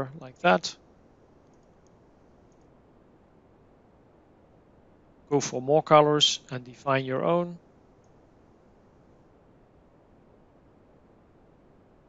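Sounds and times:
computer mouse clicks: 0:01.4 - 0:02.7.

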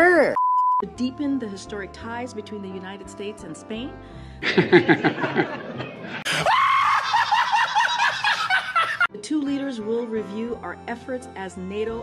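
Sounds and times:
man screaming laugh: 0:06.2 - 0:09.1.

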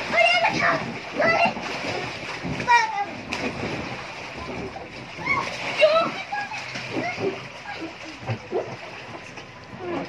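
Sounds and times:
water splashing in paddling pool: 0:00.0 - 0:10.0.

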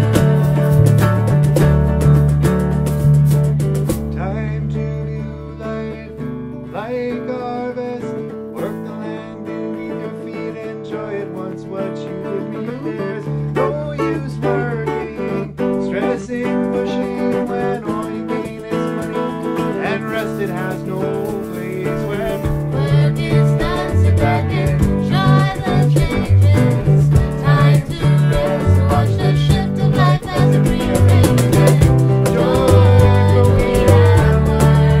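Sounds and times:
bass line: 0:00.0 - 0:06.8, 0:19.4 - 0:35.0
electric guitars: 0:00.0 - 0:35.0.

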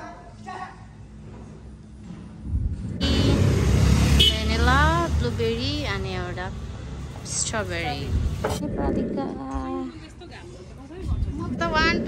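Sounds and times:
loud low rumble: 0:02.3 - 0:05.4, 0:11.0 - 0:12.0.

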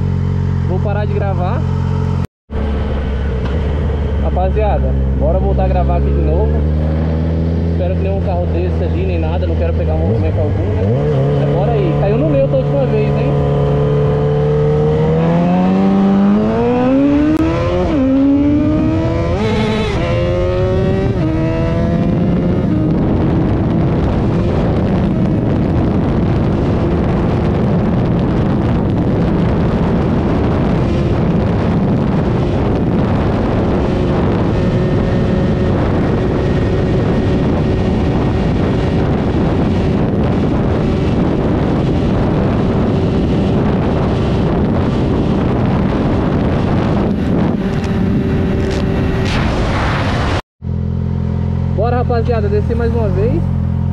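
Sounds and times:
motorcycle engine accelerating: 0:00.0 - 0:53.9
wind rushing over microphone: 0:00.0 - 0:53.9.

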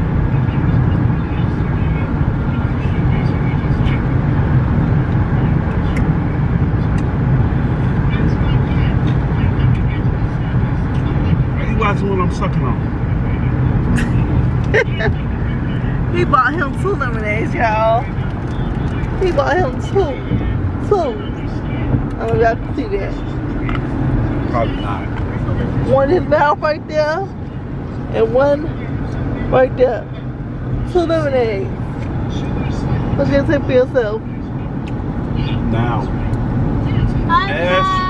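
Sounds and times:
car road and engine rumble: 0:00.0 - 0:38.0.

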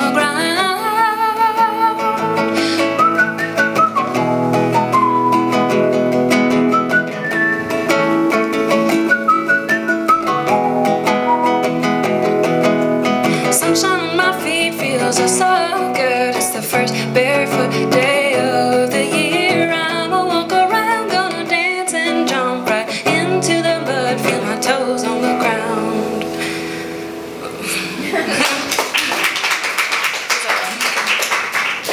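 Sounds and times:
woman singing wordless melody: 0:00.0 - 0:03.9, 0:13.3 - 0:26.4
acoustic guitar: 0:00.0 - 0:29.4.

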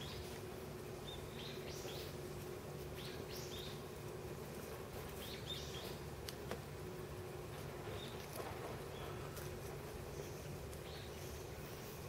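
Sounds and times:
small birds chirping: 0:00.0 - 0:03.9, 0:05.1 - 0:06.4, 0:07.8 - 0:12.0
low steady hum: 0:00.0 - 0:12.0.

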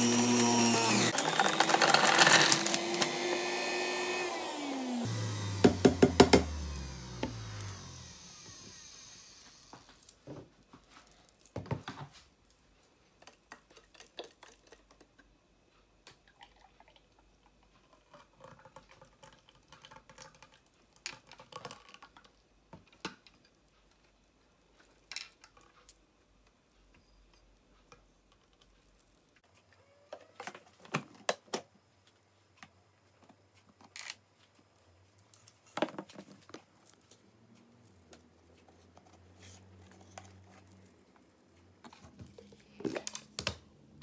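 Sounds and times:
plastic parts clicking and knocking: 0:00.9 - 0:03.2, 0:17.9 - 0:24.1.

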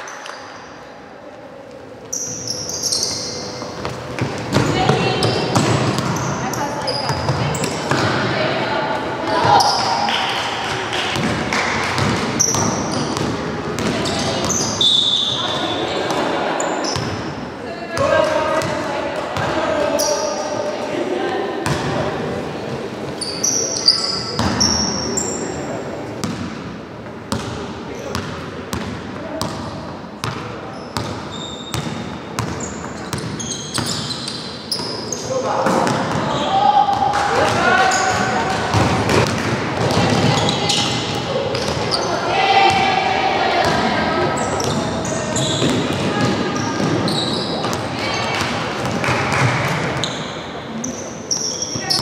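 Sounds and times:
players calling out: 0:32.6 - 0:52.0.

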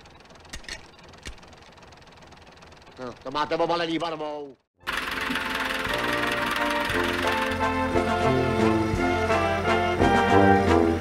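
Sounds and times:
faint engine running: 0:00.0 - 0:11.0.

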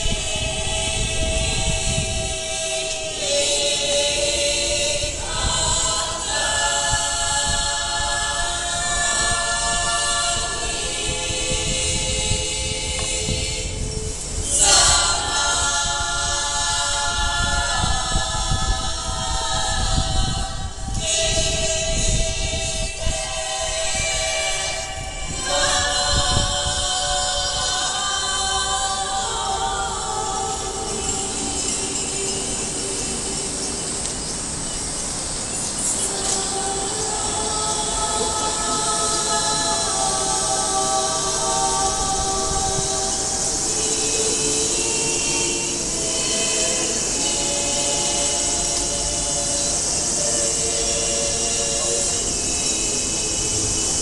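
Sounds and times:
cicadas buzzing: 0:00.0 - 0:54.0
women's choir singing: 0:00.0 - 0:54.0.

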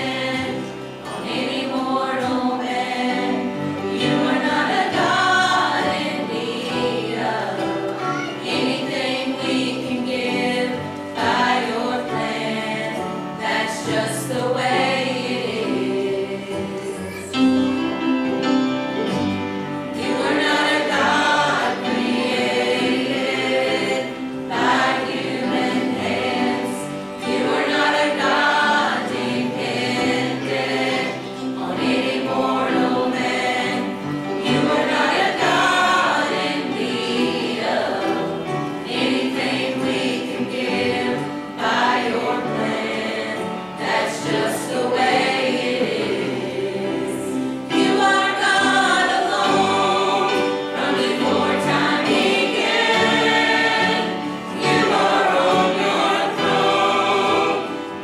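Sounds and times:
choir singing gospel: 0:00.0 - 0:58.0.

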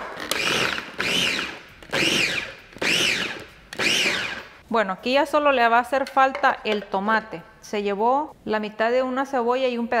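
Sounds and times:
food processor motor whining: 0:00.1 - 0:04.5.

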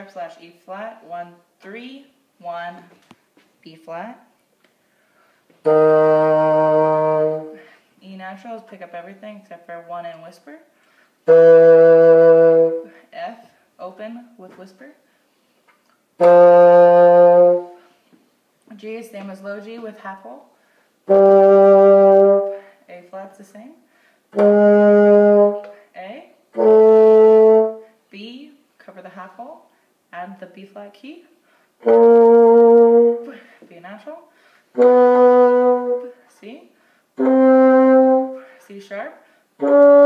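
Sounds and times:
bassoon sustained note: 0:05.6 - 0:07.6, 0:11.2 - 0:12.9, 0:16.2 - 0:17.8, 0:21.1 - 0:22.7, 0:24.4 - 0:25.7, 0:26.5 - 0:27.8, 0:31.8 - 0:33.3, 0:34.8 - 0:36.2, 0:37.2 - 0:38.5, 0:39.6 - 0:40.0.

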